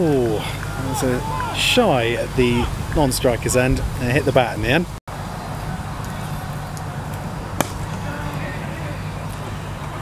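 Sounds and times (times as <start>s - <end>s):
cricket bat striking ball: 7.6s - 8.3s.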